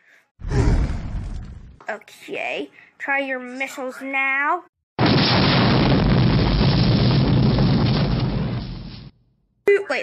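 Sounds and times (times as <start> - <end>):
explosion blast rumbling: 5.0 - 9.1.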